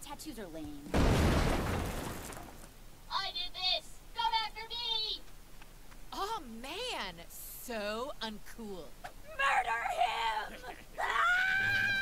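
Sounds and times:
cartoon voice screaming: 0:09.4 - 0:12.0.

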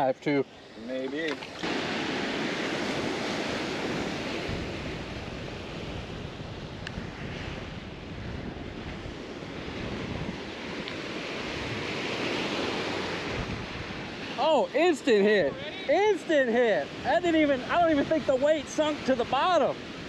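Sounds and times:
surf washing onto sand: 0:00.0 - 0:20.0
wind buffeting microphone: 0:00.0 - 0:20.0.

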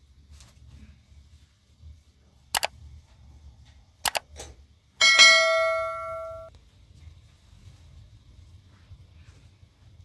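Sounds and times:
bright bell ding: 0:05.0 - 0:06.5.

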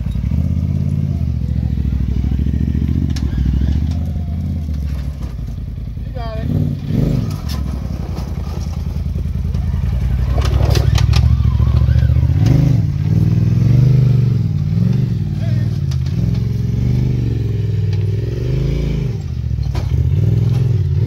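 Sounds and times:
off-road vehicle engine revving: 0:00.0 - 0:21.0.

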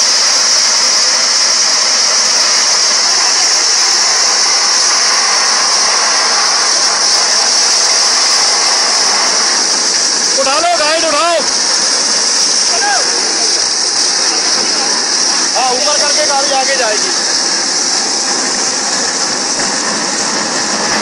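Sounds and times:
high-pitched rush of air and spray: 0:00.0 - 0:21.0
rig engine running: 0:00.0 - 0:21.0.

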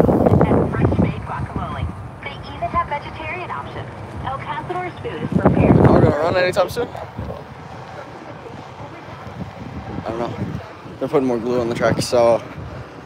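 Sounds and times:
wind buffeting microphone: 0:00.0 - 0:13.0
faint people talking: 0:00.4 - 0:13.0.

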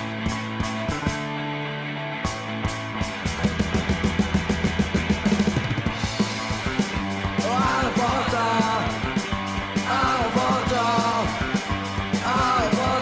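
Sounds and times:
punk rock band playing: 0:00.0 - 0:13.0.

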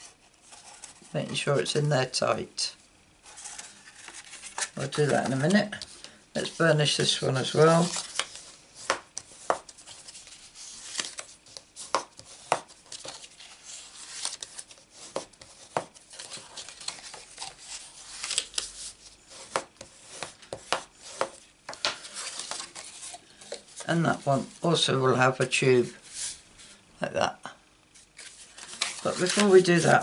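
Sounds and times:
card scraping and rubbing: 0:03.2 - 0:24.5, 0:28.0 - 0:30.0.

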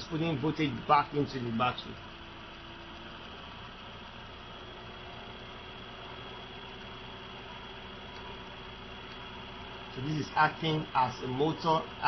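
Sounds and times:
motor generator humming: 0:00.0 - 0:12.0.

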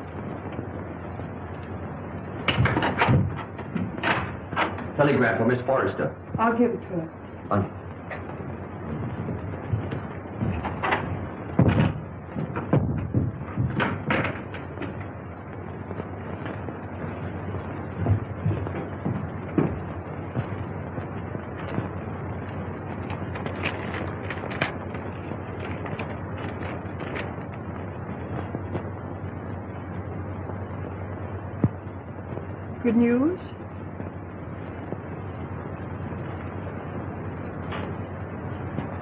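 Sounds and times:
film soundtrack hiss: 0:00.0 - 0:39.0
sharp knocks and thuds: 0:02.4 - 0:04.8, 0:08.1 - 0:15.2, 0:17.6 - 0:22.0.

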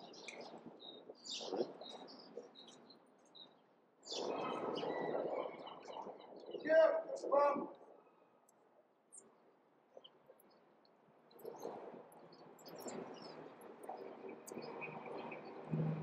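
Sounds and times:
street noise: 0:13.9 - 0:16.0.

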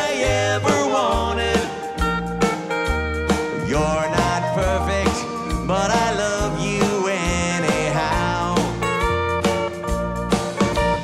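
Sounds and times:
country band playing: 0:00.0 - 0:11.0.

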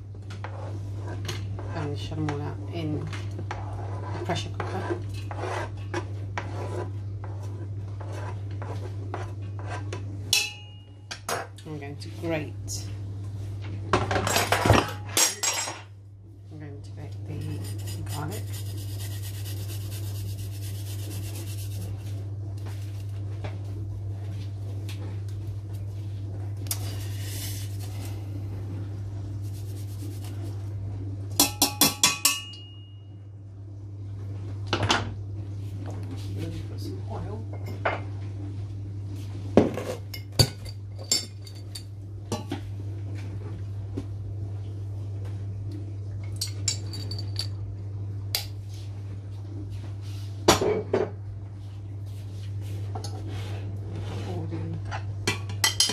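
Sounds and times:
steady low hum: 0:00.0 - 0:55.9.

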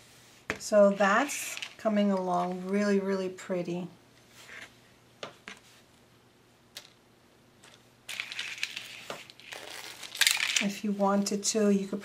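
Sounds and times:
artificial leaves crinkling: 0:00.6 - 0:03.0, 0:07.6 - 0:12.0.

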